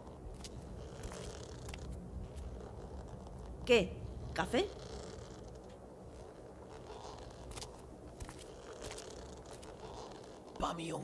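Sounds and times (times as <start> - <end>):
rustles: 0.0 - 10.6.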